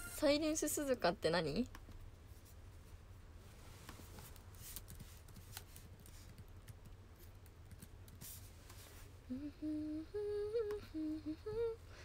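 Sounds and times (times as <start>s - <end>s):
woman softly humming: 9.2s - 12.0s.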